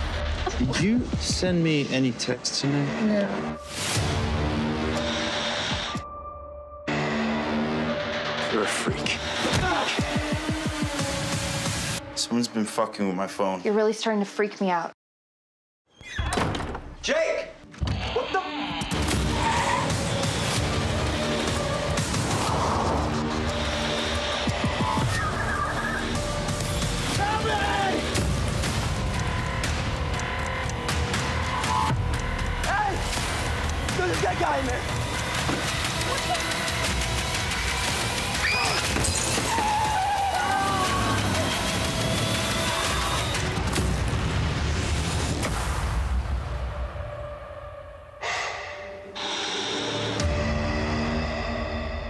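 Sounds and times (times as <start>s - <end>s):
music: 0.0s - 14.9s, 16.3s - 52.0s
man yelling: 27.2s - 28.1s.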